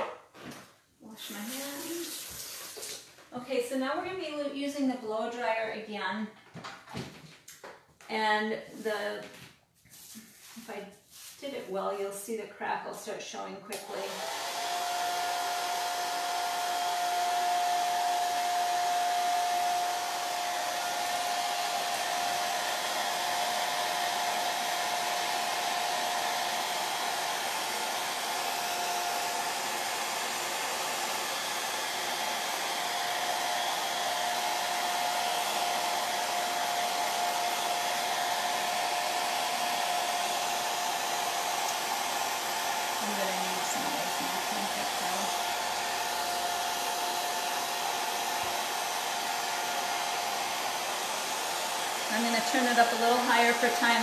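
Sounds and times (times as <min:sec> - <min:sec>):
blow dryer hissing and whining: 0:13.7 - 0:54.0.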